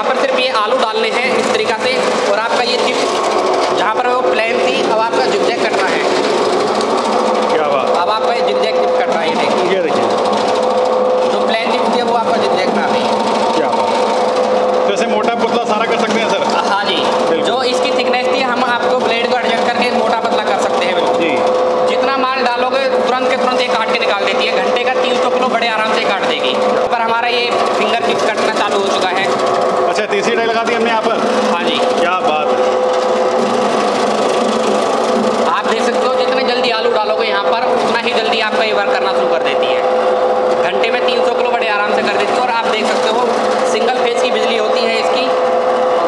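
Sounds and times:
people talking: 0:00.0 - 0:03.1, 0:03.8 - 0:06.1, 0:07.5 - 0:10.2, 0:11.3 - 0:13.8, 0:14.9 - 0:32.6, 0:35.5 - 0:39.9, 0:40.6 - 0:45.3
slicing machine motor hum: 0:00.0 - 0:46.0.

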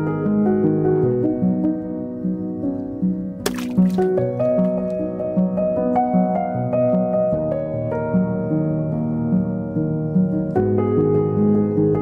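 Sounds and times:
soft instrumental music: 0:00.0 - 0:12.0.

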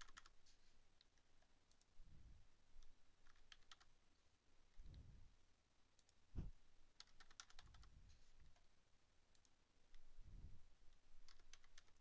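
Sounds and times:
keyboard keystrokes: 0:00.0 - 0:00.4, 0:07.0 - 0:07.9, 0:11.2 - 0:12.0
soft low thumps: 0:06.3 - 0:06.6.

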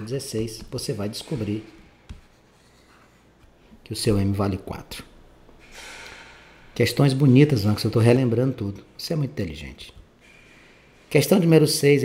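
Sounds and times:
man speaking: 0:00.0 - 0:01.8, 0:03.8 - 0:05.1, 0:06.8 - 0:10.0, 0:11.1 - 0:12.0.

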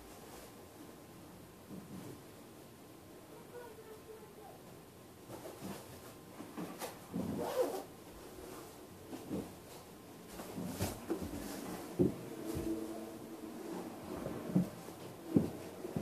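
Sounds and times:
fabric rustling: 0:05.3 - 0:16.0
jacket zipper: 0:07.2 - 0:07.9.

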